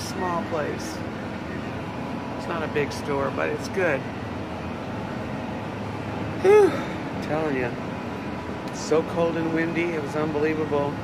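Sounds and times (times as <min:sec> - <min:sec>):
low background rumble and hiss: 0:00.0 - 0:11.0.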